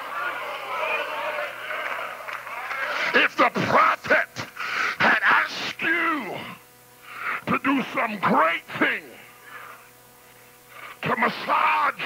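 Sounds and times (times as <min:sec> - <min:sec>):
congregation voices responding: 0:00.0 - 0:09.8
tape recording hum: 0:00.0 - 0:12.0.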